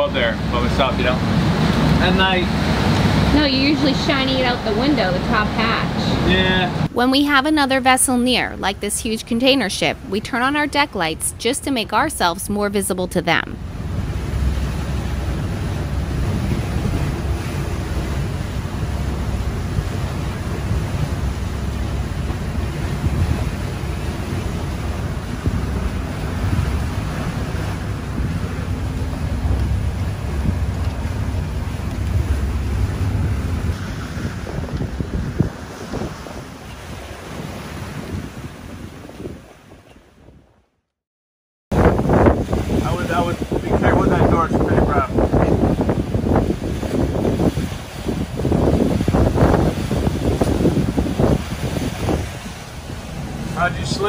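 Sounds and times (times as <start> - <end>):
wind and sea rushing: 0.0 - 40.8, 41.7 - 54.0
wind rumble on microphone: 13.6 - 40.7, 41.7 - 54.0.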